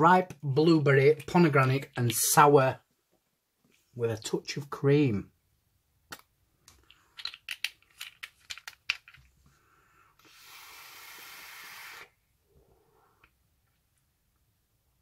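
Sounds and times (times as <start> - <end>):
airy hiss of vape hit: 10.2 - 12.2.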